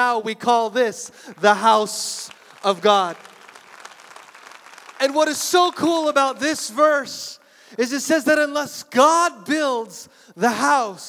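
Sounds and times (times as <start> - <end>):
soft applause: 1.2 - 7.4.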